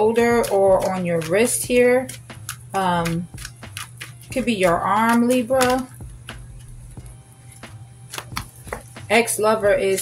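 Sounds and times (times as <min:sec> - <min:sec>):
cards clicking and tapping: 0:00.4 - 0:04.4, 0:07.6 - 0:08.9.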